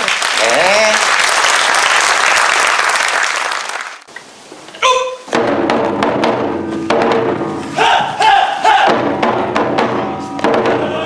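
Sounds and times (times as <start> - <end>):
taiko drum strike: 5.3 - 8.1, 8.7 - 11.0
group shout: 7.8 - 9.0.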